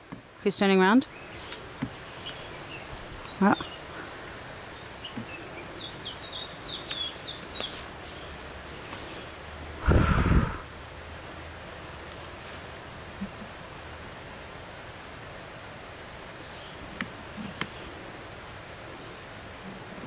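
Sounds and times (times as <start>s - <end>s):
steady low hiss: 0.0s - 20.0s.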